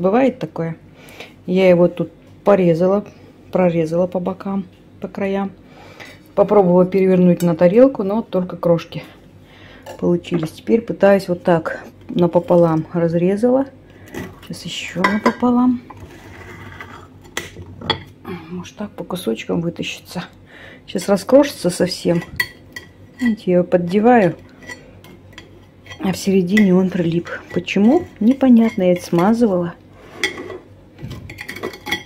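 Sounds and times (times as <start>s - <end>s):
utensil scraping baking dish: 14.1s - 18.0s, 21.0s - 32.0s
kitchen utensils clicking: 30.2s - 32.0s.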